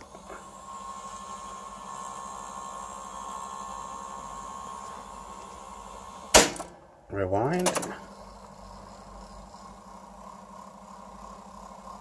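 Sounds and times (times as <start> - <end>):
tape reels winding with whir: 0.0 - 6.2.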